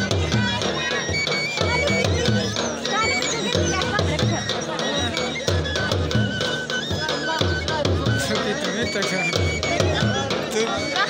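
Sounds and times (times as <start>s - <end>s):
drum beating steady rhythm: 0.0s - 11.0s
high held melody line: 0.0s - 11.0s.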